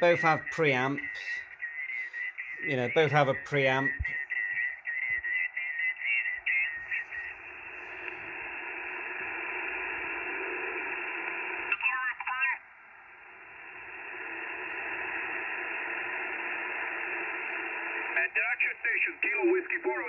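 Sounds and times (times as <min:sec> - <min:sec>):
warbling sideband radio voice: 0:00.0 - 0:12.6, 0:14.2 - 0:20.0
radio static hiss: 0:00.0 - 0:20.0.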